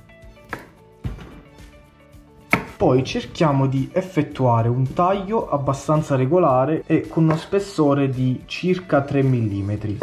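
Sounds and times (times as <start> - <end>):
quiet background music: 0.0 - 10.0
knife chopping on cutting board: 0.5 - 1.4, 2.5 - 2.8.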